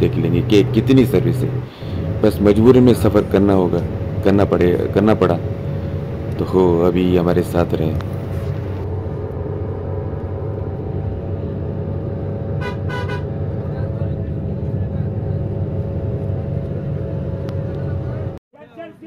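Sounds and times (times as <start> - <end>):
bus engine and road rumble: 0.0 - 19.0
vehicle horn toots: 12.6 - 13.4.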